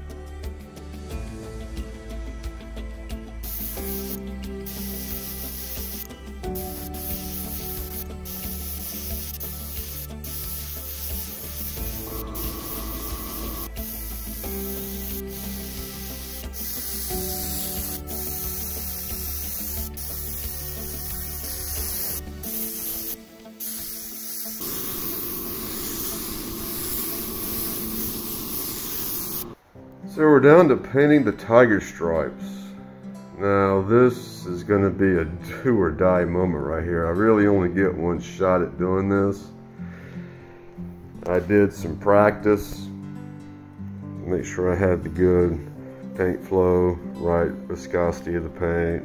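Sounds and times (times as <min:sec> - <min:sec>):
instrumental background music: 0:00.0 - 0:49.0
spray gun hissing: 0:03.4 - 0:29.6.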